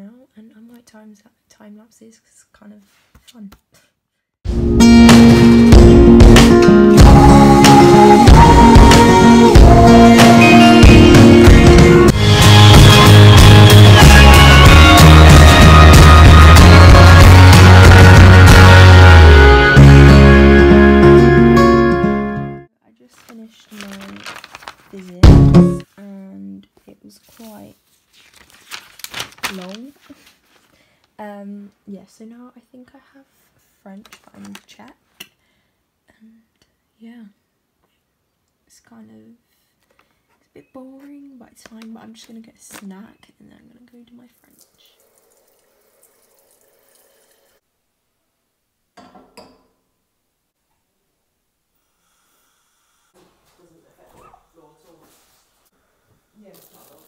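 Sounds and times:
background music: 0:04.5 - 0:22.7
quiet voice speaking: 0:53.2 - 0:55.3.

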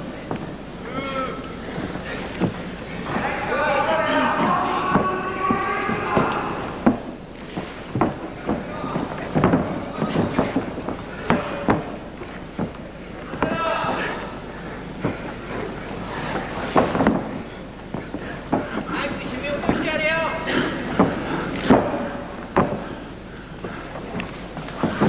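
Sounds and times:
people shouting in a hall: 0:00.0 - 0:25.0
bodies thudding on a mat: 0:04.5 - 0:14.2, 0:15.0 - 0:19.0, 0:20.5 - 0:25.0.

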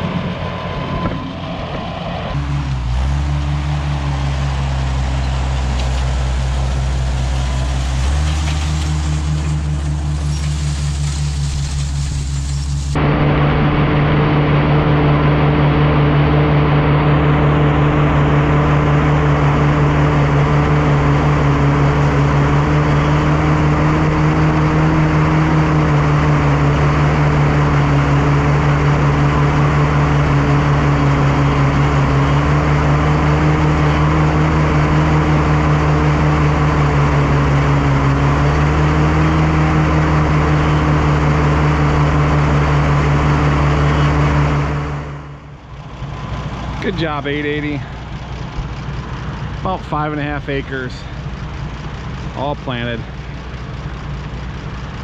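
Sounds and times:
tractor engine running under load: 0:00.0 - 0:55.0.

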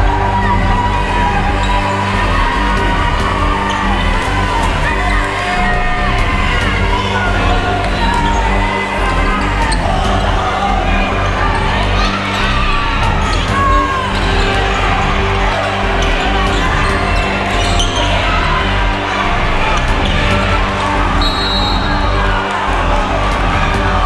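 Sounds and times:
background music: 0:00.0 - 0:24.0
voices: 0:00.0 - 0:24.0
sneakers squeaking: 0:00.2 - 0:22.6.

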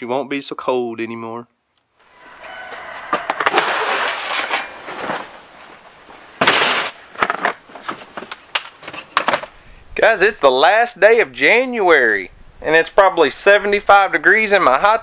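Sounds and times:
scraping on table: 0:02.4 - 0:05.4
plastic tubs rattling and knocking: 0:06.4 - 0:09.5.

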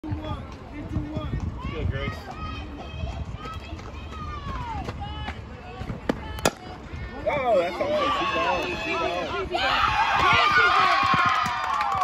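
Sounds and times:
players shouting: 0:07.2 - 0:12.0.

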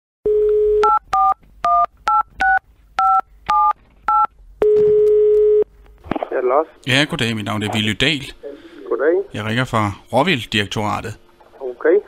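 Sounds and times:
telephone dial tone: 0:00.3 - 0:05.6
telephone ringing tone: 0:00.3 - 0:05.7.

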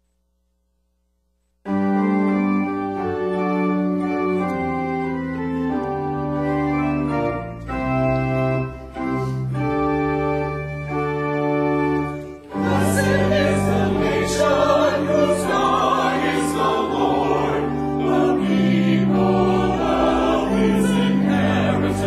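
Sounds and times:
organ chords: 0:01.6 - 0:22.0
church choir singing: 0:11.7 - 0:22.0.

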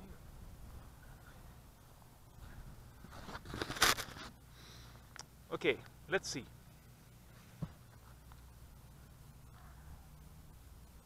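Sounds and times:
close rustling scrape: 0:03.0 - 0:04.4.

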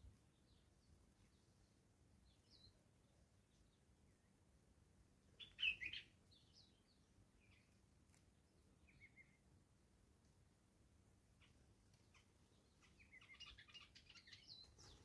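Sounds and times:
wild birds chirping: 0:00.0 - 0:15.0.

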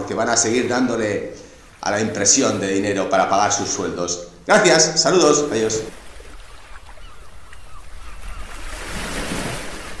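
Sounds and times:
ocean waves surging: 0:00.0 - 0:10.0.

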